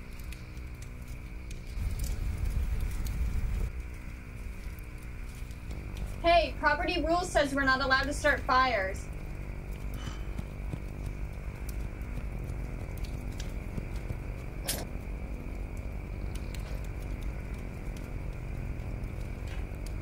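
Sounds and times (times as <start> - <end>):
low background hum: 0.0 - 20.0.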